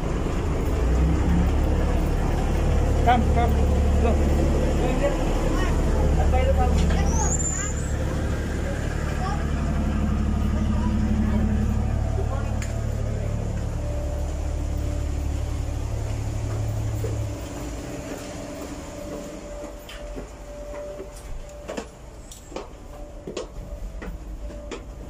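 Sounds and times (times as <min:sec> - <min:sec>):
ship machinery humming: 0:00.0 - 0:25.0
faint voices: 0:03.0 - 0:16.2.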